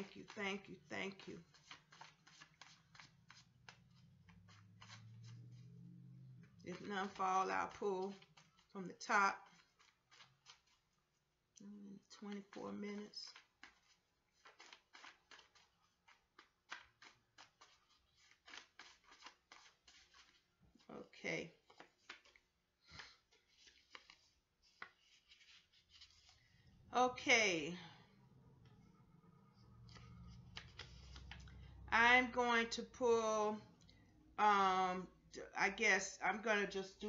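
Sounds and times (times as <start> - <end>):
cards being shuffled: 0.0 - 5.8, 6.7 - 8.7, 9.4 - 10.8, 12.3 - 20.9, 21.6 - 26.5, 29.7 - 31.6.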